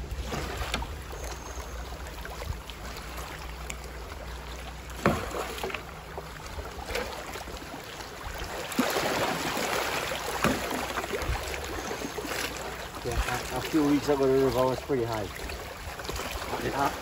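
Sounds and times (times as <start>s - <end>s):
river water rushing: 0.0s - 17.0s.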